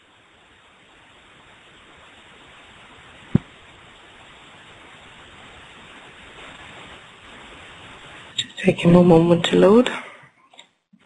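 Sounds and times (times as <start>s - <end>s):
microphone hiss: 0.0s - 11.0s
short thump: 3.3s - 3.5s.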